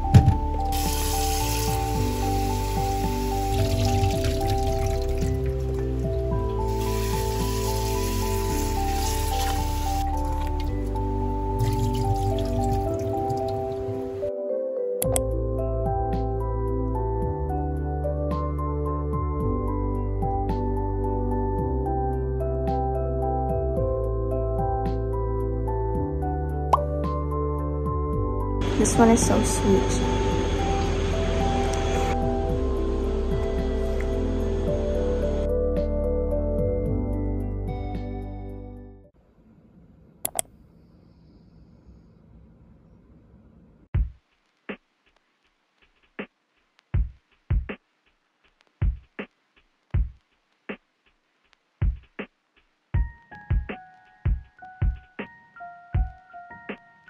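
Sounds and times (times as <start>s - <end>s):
simple melody background music: 0.0s - 39.2s, 52.9s - 57.0s
tap water running into bowl: 0.7s - 10.8s.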